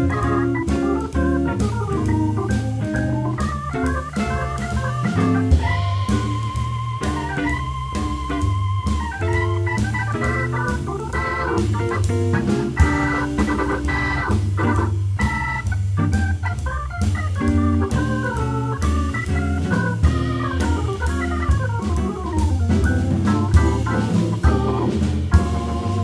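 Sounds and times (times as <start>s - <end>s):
bass line: 0.0s - 26.0s
drum kit: 0.0s - 26.0s
electric guitar: 0.0s - 26.0s
jazz organ melody: 0.0s - 26.0s.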